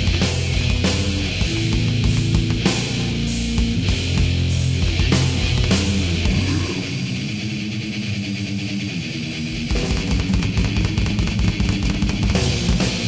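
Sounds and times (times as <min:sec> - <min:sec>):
fast drumming: 0:00.0 - 0:06.8, 0:09.7 - 0:13.0
distorted electric guitar: 0:00.0 - 0:13.0.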